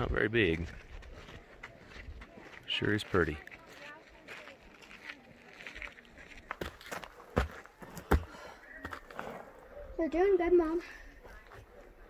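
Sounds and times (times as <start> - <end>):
faint voices: 0.6 - 12.0.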